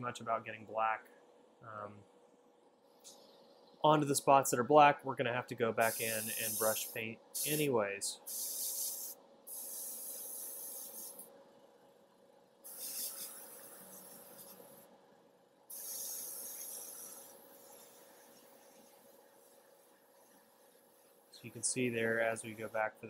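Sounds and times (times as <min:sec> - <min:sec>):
faint steady hum: 0:00.0 - 0:23.0
airbrush spraying hiss: 0:05.8 - 0:11.3, 0:12.6 - 0:14.8, 0:15.7 - 0:22.8.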